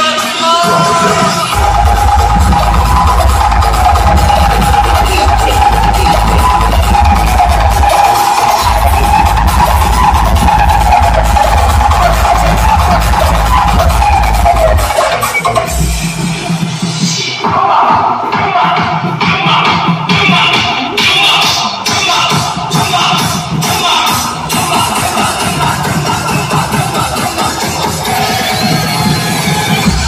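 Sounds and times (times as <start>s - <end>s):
loud music over sound system: 0.0s - 30.0s
heavy bass line: 0.4s - 30.0s.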